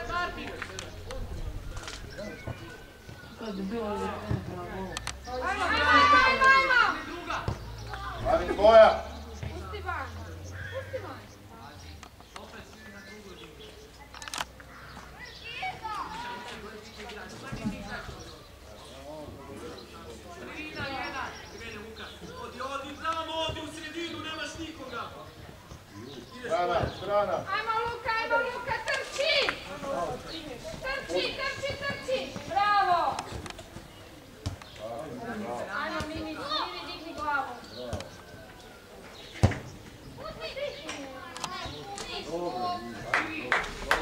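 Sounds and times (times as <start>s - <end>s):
children shouting: 5.4s - 7.1s.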